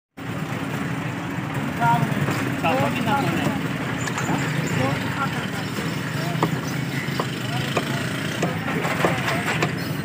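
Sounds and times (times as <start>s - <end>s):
low street rumble: 0.2s - 10.0s.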